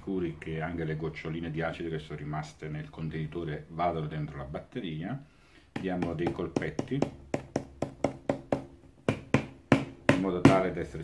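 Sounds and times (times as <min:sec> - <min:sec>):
fingertips tapping plastic container: 0:05.7 - 0:10.7.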